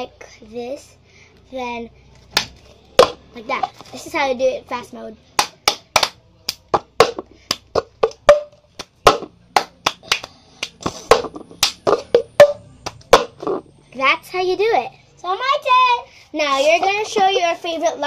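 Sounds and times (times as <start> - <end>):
hand claps: 5.4 - 13.3.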